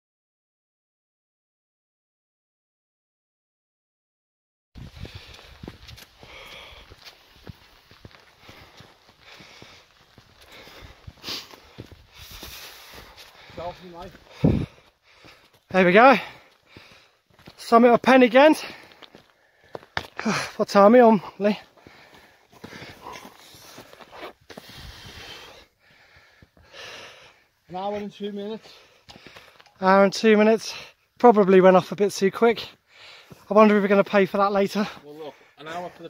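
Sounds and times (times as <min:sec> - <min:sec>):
person breathing heavily: 0:04.8 - 0:17.5, 0:18.6 - 0:20.6, 0:21.2 - 0:27.7, 0:28.5 - 0:29.8, 0:32.7 - 0:33.5, 0:34.9 - 0:36.0
footsteps on stone: 0:04.8 - 0:20.6, 0:21.2 - 0:27.0, 0:27.8 - 0:29.8, 0:32.7 - 0:35.0.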